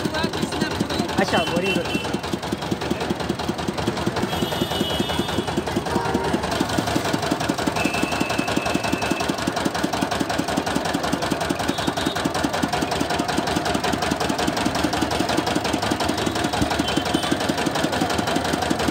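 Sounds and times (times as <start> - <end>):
crusher engine chugging: 0.0 - 18.9.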